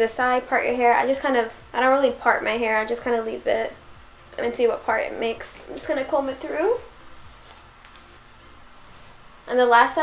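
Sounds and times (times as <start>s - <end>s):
quiet background music: 0.0s - 10.0s
hairbrush swishing through hair: 5.4s - 9.6s.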